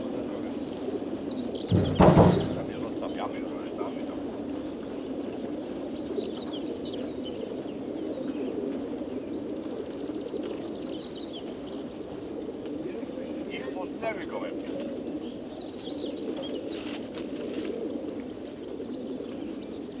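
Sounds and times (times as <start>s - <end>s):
pigeons cooing: 0.0s - 20.0s
songbirds chirping: 0.0s - 20.0s.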